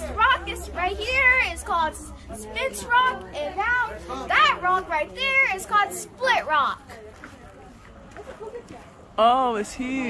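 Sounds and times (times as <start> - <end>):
girl talking: 0.0 - 7.0.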